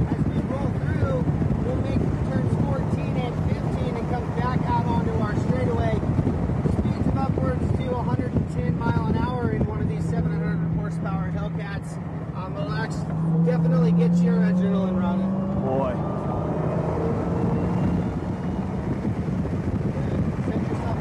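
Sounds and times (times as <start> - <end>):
road and wind noise: 0.0 - 21.0
car engine drone from inside cabin: 0.1 - 21.0.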